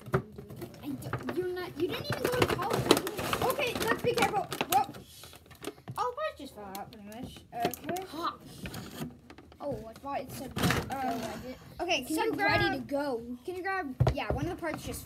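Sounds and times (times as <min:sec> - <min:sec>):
kids talking: 0:00.0 - 0:08.7, 0:09.5 - 0:15.0
cardboard and plastic packaging rustling: 0:00.0 - 0:12.8.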